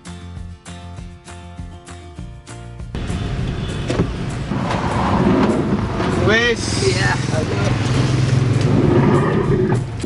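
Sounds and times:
background music: 0.0 - 10.0
car cabin rumble: 3.0 - 6.6.

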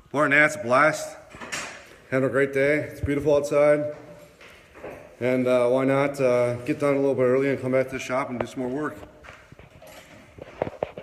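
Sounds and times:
light footsteps: 2.9 - 5.5, 6.3 - 11.0.

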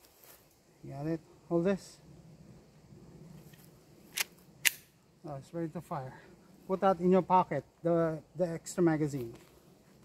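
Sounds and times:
pistol metallic clicks: 4.1 - 5.0.

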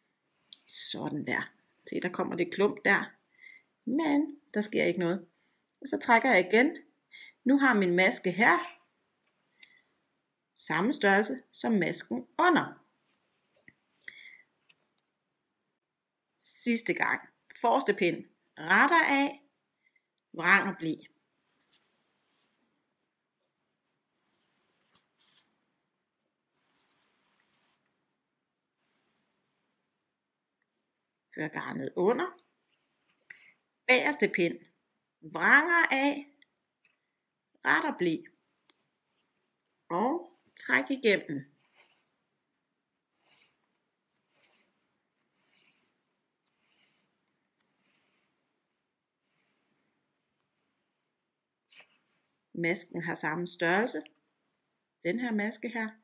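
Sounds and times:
needle rustling through wool: 0.0 - 3.1, 20.5 - 30.3, 38.4 - 52.6
yarn being drawn through: 0.0 - 3.1, 26.4 - 28.0, 28.7 - 30.0, 38.9 - 52.4
soft hiss: 21.0 - 31.0, 38.4 - 52.6.

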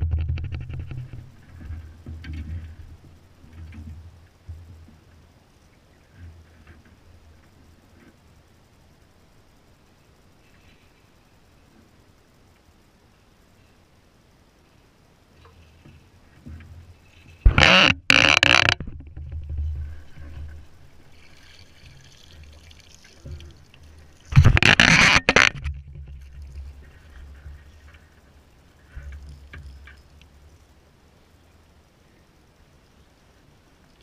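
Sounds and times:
fish splashing in water: 20.8 - 24.7.

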